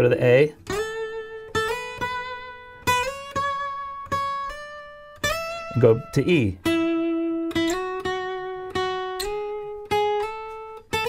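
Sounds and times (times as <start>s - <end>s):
acoustic guitar notes picked: 0.0s - 11.0s.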